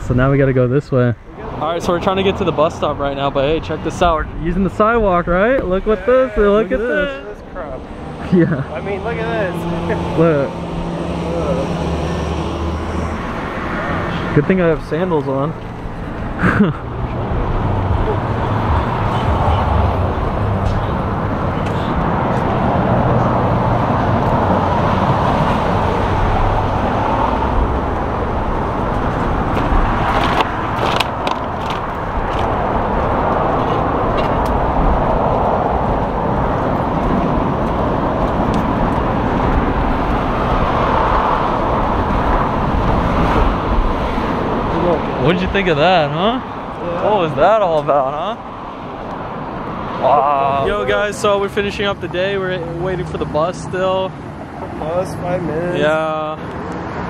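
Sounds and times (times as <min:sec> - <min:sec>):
road traffic on city street: 0:00.0 - 0:57.0.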